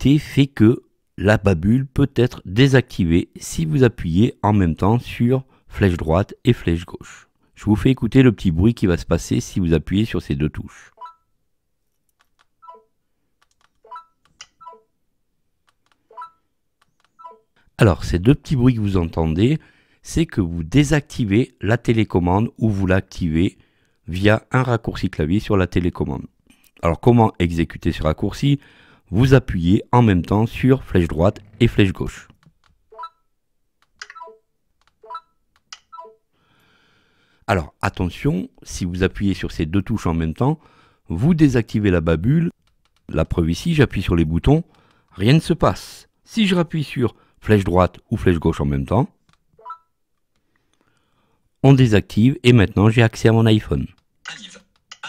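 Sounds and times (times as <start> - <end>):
remote button clicks: 13.4 - 14.8, 33.8 - 36.1.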